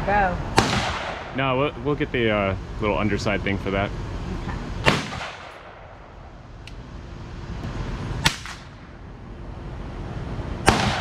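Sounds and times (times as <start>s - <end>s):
gunshots with echo: 0.6s - 1.4s, 4.8s - 6.0s, 10.7s - 11.0s.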